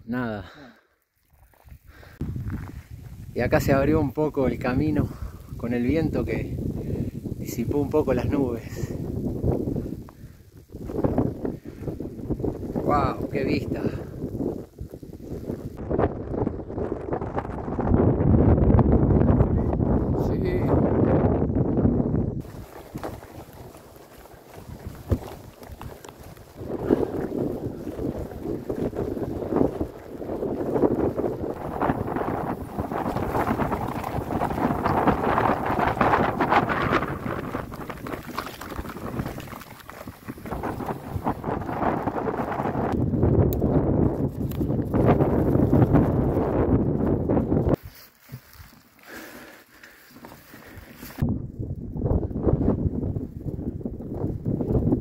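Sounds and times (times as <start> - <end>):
bike tyres rumbling on gravel: 1.4 - 55.0
wind rushing over microphone: 1.7 - 48.0, 50.1 - 55.0.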